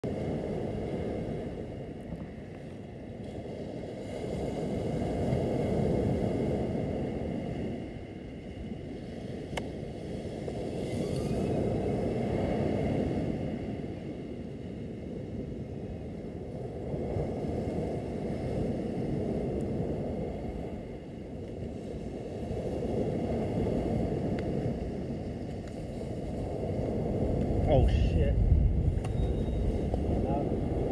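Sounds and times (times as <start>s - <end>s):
surf washing onto beach: 0.0s - 30.9s.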